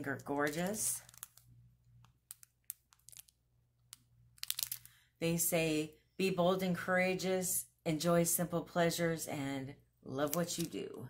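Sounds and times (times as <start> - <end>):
plastic packaging crinkling: 0.1 - 3.4, 4.4 - 5.0.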